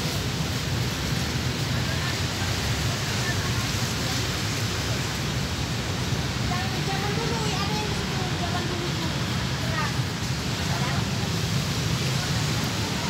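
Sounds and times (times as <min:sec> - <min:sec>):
steady outdoor hiss: 0:00.0 - 0:13.0
faint voices: 0:01.5 - 0:13.0.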